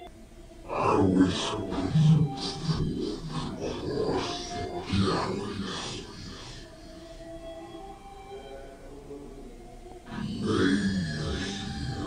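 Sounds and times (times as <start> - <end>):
low voice-like sample: 0.6 - 6.8, 10.1 - 12.0.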